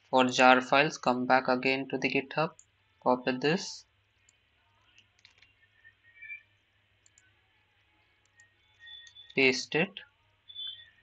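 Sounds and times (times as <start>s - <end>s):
faint high-pitched chirp: 4.8s - 7.3s, 8.0s - 11.0s.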